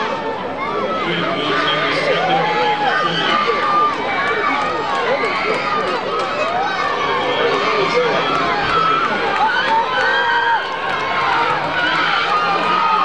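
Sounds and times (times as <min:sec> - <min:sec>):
crowd talking and calling out: 0:00.0 - 0:13.0.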